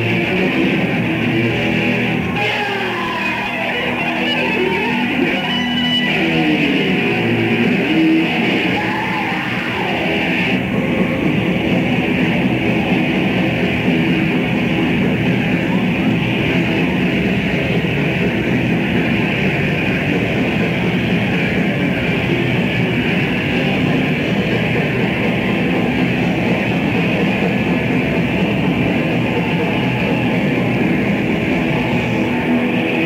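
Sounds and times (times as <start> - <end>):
metal band playing live: 0.0 - 33.0.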